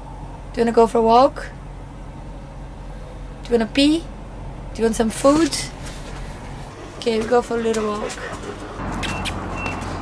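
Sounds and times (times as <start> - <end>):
low steady hum: 0.0 - 8.9.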